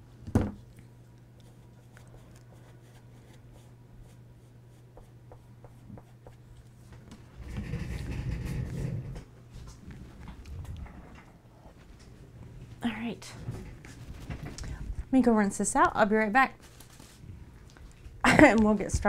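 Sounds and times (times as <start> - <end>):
low electrical hum: 0.0 - 19.0.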